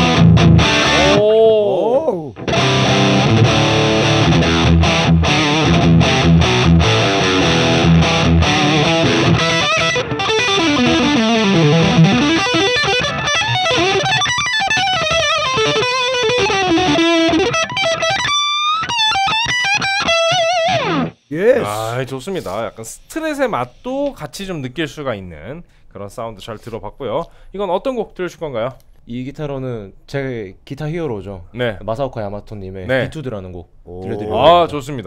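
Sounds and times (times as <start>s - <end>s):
distorted electric guitar: 0.0s - 1.3s, 2.3s - 21.2s.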